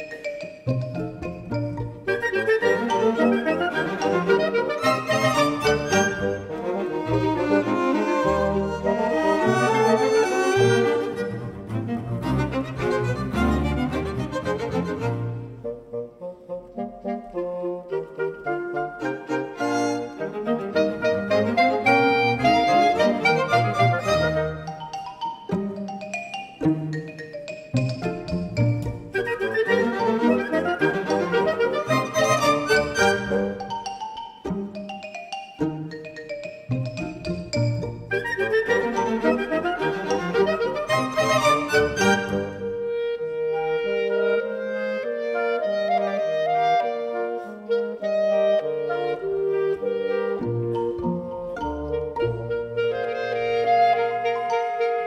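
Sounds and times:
chamber orchestra with violins: 0.0s - 55.0s.

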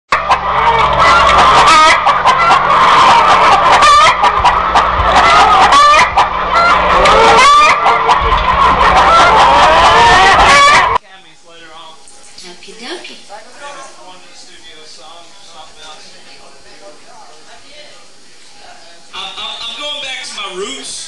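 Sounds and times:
chickens clucking and squawking: 0.1s - 11.0s.

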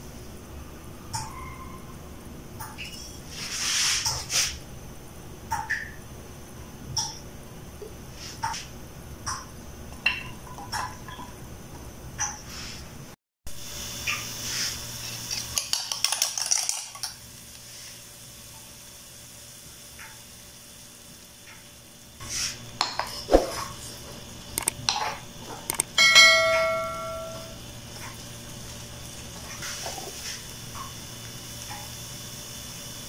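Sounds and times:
egg hissing in hot oil: 13.5s - 24.6s, 27.4s - 33.0s
metal clang ringing: 26.0s - 27.6s
spoon clinking against bowl: 26.0s - 27.6s.

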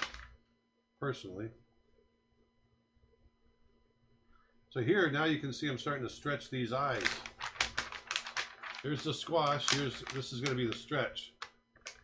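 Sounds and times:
paper sheets flipping: 0.0s - 0.3s, 6.9s - 12.0s.

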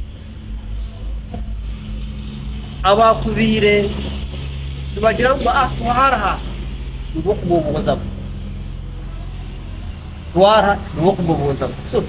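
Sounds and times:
low steady rumble: 0.0s - 12.0s
man talking: 2.8s - 4.2s, 4.9s - 6.5s, 7.1s - 8.1s, 10.3s - 12.0s.

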